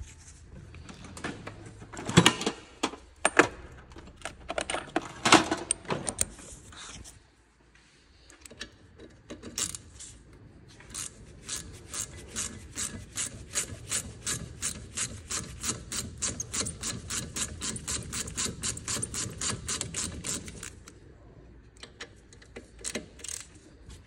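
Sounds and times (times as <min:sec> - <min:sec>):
ratchet pawl clicking: 0:10.9 - 0:20.9.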